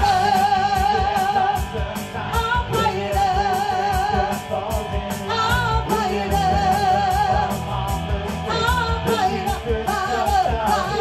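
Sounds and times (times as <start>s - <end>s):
woman singing: 0.0s - 7.6s, 8.4s - 11.0s
bass guitar: 0.0s - 11.0s
drum kit beat: 0.0s - 11.0s
electric guitar: 0.0s - 11.0s.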